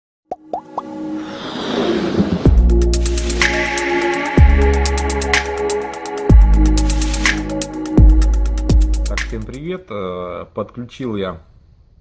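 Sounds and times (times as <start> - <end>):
quick rising plops: 0.3 - 2.8
whoosh with synth tones: 0.9 - 4.1.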